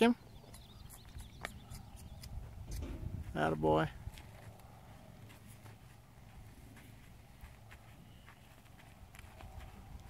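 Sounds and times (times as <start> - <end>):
horse hoofbeats on dirt: 4.4 - 10.0.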